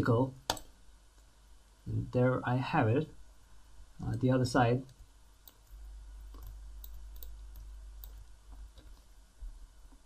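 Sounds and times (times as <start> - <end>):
faint computer mouse clicks: 4.9 - 9.1.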